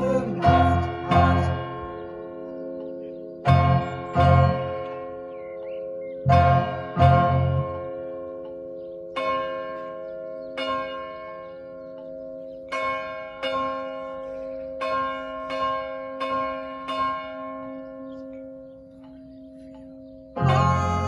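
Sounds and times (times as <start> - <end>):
church bells ringing: 0.0 - 21.0.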